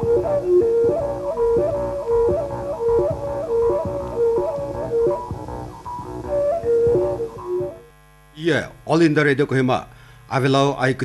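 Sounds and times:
news signature tune: 0.0 - 7.9
low mains hum: 0.0 - 11.0
newsreader speaking: 8.4 - 11.0.

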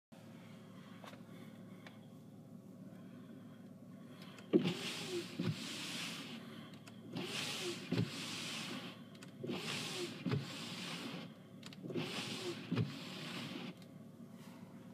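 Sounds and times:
wiper motor whirring: 4.2 - 14.0
wipers swishing snow: 4.5 - 13.8.

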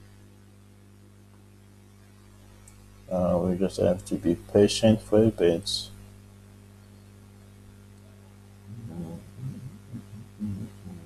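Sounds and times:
electrical mains hum: 0.0 - 11.0
man humming softly: 8.7 - 11.0.

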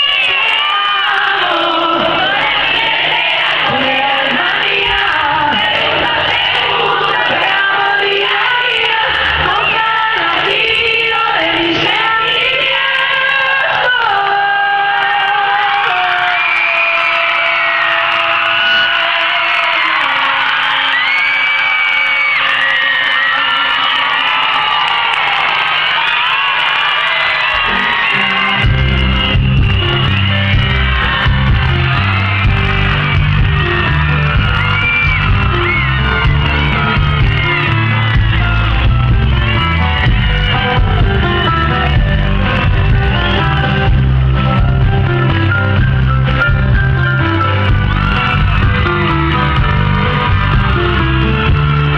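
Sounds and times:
crowd cheering and whooping: 0.0 - 51.9
live pop-rock band: 27.2 - 51.9
heavy bass and drums: 27.9 - 51.9.

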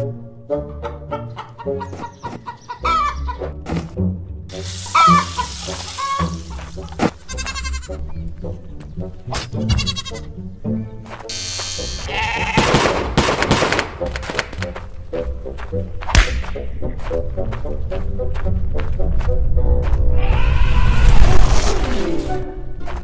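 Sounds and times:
background music: 0.0 - 23.0
sheep bleating: 7.2 - 8.0, 9.7 - 10.3, 11.3 - 12.8
electric hair clippers buzzing: 11.3 - 12.1.

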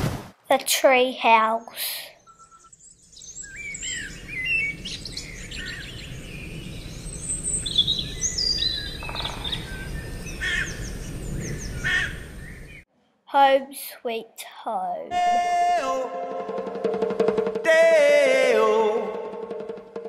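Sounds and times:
birds chirping and whistling: 2.2 - 12.8.

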